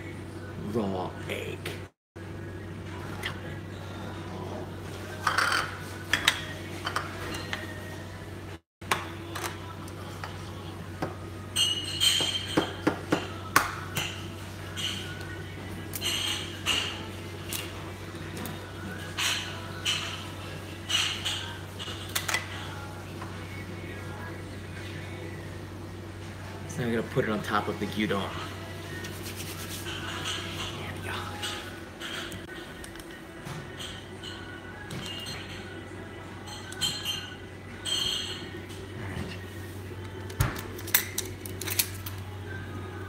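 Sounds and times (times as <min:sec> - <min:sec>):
dishes clinking: 0:05.1 - 0:07.7, 0:11.5 - 0:15.2, 0:19.0 - 0:22.5, 0:29.8 - 0:32.6, 0:33.4 - 0:39.2.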